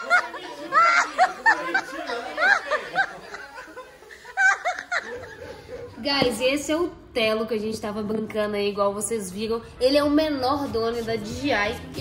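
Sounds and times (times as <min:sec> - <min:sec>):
people laughing: 0:00.0 - 0:06.2.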